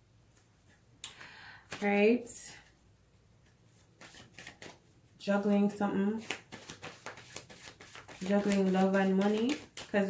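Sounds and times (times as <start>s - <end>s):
cards rustling and tapping: 3.4s - 4.8s, 6.2s - 10.0s.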